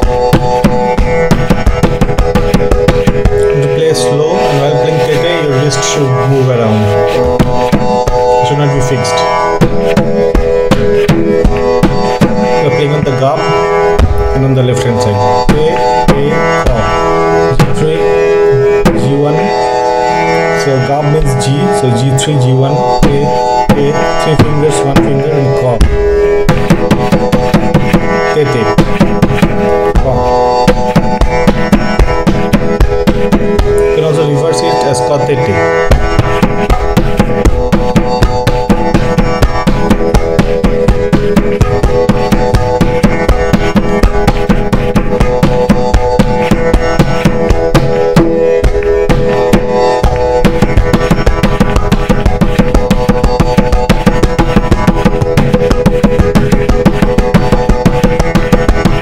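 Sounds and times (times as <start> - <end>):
tabla drumming: 0.0 - 59.0.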